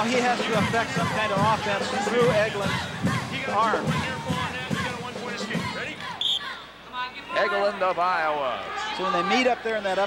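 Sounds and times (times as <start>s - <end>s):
arena voices: 0.0s - 10.0s
referee's whistle blast: 6.2s - 6.5s.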